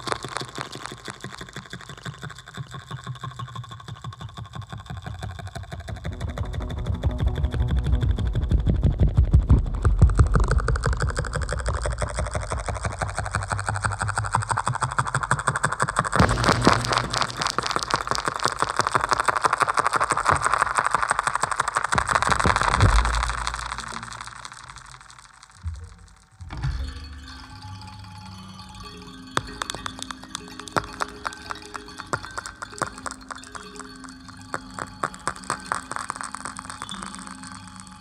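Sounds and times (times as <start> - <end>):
techno on homemade instruments: 0.0 - 38.0
thumps: 16.2 - 27.2.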